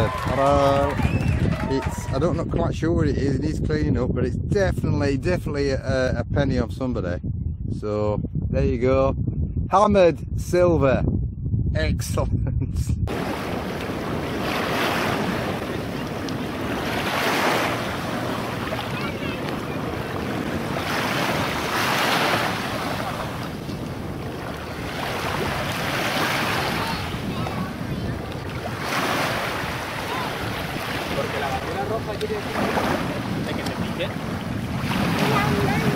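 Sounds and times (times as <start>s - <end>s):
wind buffeting microphone: 0.0s - 35.9s
small waves washing: 13.1s - 35.9s.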